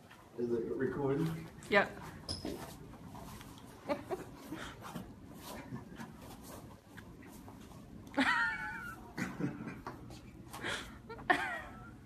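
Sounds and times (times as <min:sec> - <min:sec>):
men grunting and breathing: 0:04.3 - 0:06.2.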